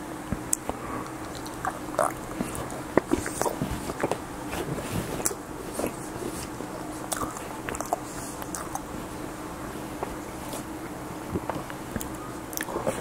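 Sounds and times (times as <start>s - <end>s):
chewing food: 0.5s - 4.2s, 5.1s - 8.9s, 10.0s - 13.0s
wet mouth clicks and smacks: 0.5s - 4.2s.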